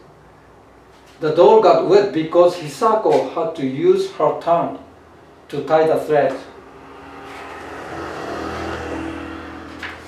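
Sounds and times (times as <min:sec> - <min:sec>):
vehicle engine passing by: 0:06.5 - 0:10.0.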